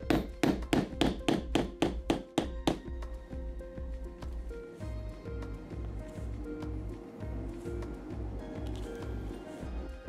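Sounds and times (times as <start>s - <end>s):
hammer strikes on metal: 0.0s - 2.9s
background music: 0.0s - 10.0s.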